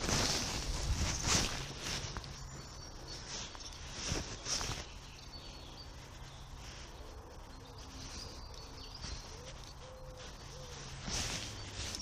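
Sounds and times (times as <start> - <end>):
rustles and crunches on leaf litter: 0.0 - 12.0.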